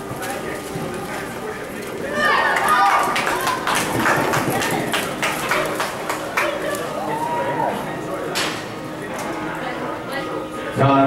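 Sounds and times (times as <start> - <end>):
spectators shouting: 2.1 - 8.1.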